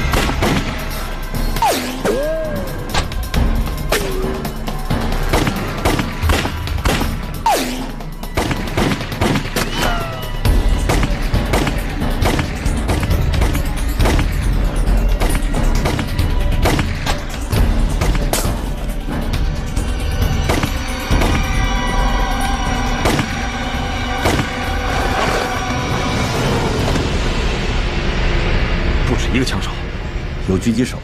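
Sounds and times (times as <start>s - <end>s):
dramatic background music: 0.0s - 31.0s.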